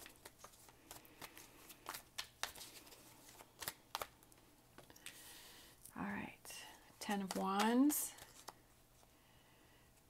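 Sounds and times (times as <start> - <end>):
cards shuffling: 0.0 - 5.3, 7.0 - 9.1.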